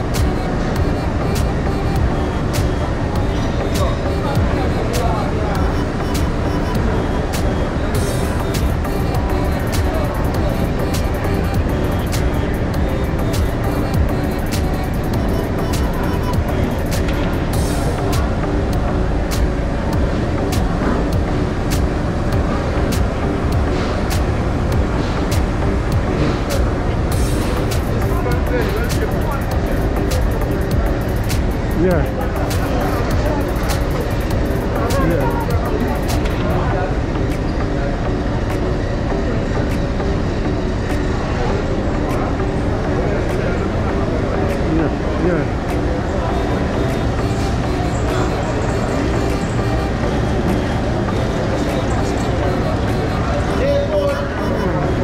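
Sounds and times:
music playing: 0.0 - 55.0
people chattering: 0.0 - 55.0.

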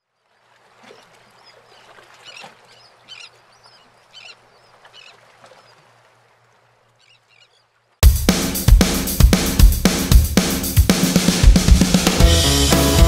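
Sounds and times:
birds calling: 0.7 - 7.8.

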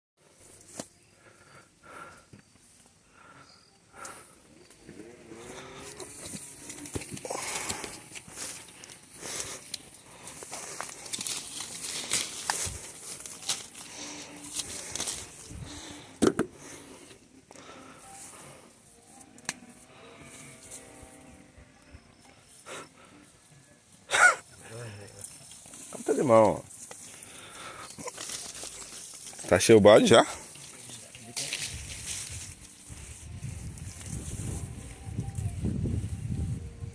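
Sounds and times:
leaves and branches rustling: 4.6 - 19.3, 24.4 - 36.9.

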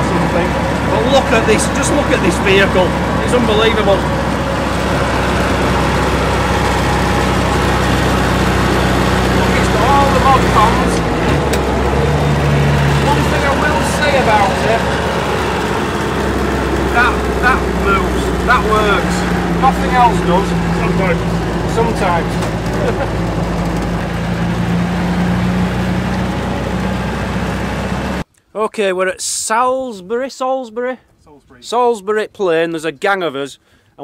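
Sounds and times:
engine and drivetrain drone: 0.0 - 28.2.

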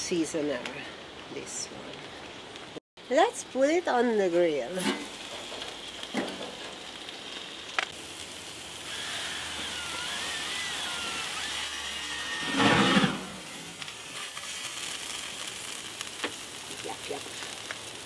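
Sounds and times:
grill flame rushing: 0.7 - 18.0
skewers sizzling on grill: 3.0 - 18.0.

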